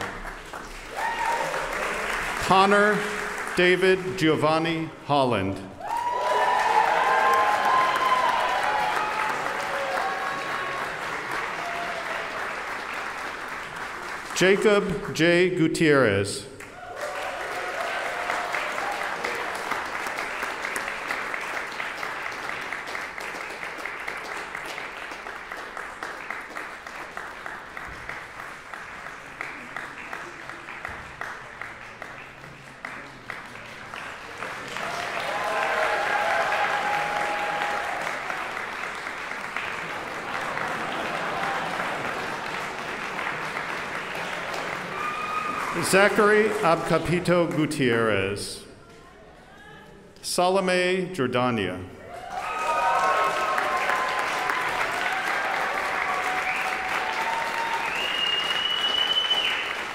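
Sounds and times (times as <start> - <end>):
audience applauding: 0.0 - 4.8, 5.8 - 15.5, 16.6 - 48.2, 52.1 - 59.9.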